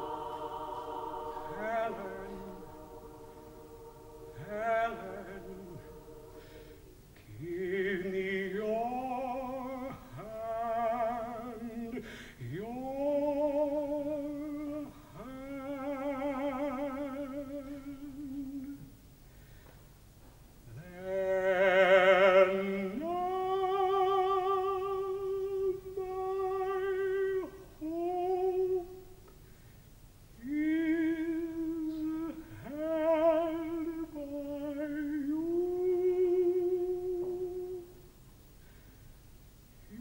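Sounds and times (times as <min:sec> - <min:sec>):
operatic tenor singing: 0:00.0 - 0:18.9, 0:20.7 - 0:29.1, 0:30.4 - 0:38.0.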